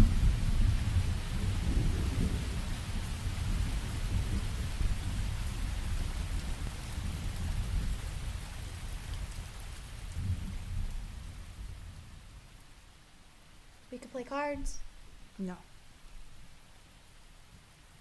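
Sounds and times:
thunder rumbling: 0.0 - 12.4
steady rain: 0.0 - 18.0.

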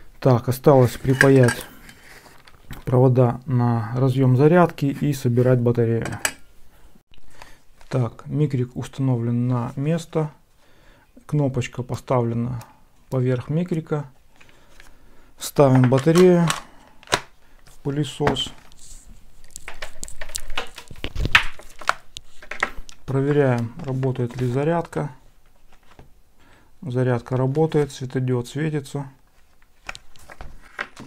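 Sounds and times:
handling clicks and rustling: 0.8 - 2.9, 15.6 - 26.1.

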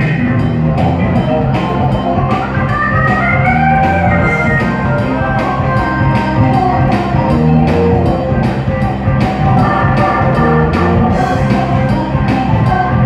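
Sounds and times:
lead melody line: 0.0 - 13.0
live band playing: 0.0 - 13.0.

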